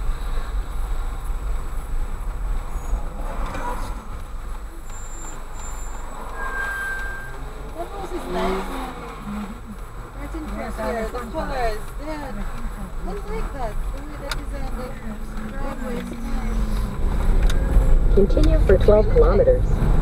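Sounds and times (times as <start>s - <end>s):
car engine idling: 0.0s - 20.0s
short beep: 4.9s - 7.5s.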